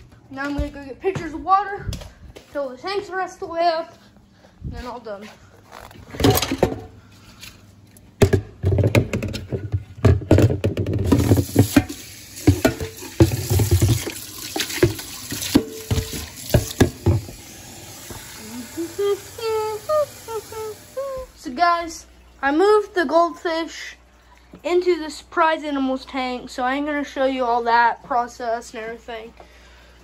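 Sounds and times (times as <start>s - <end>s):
pitcher knocking against sink: 10.1s - 17.4s.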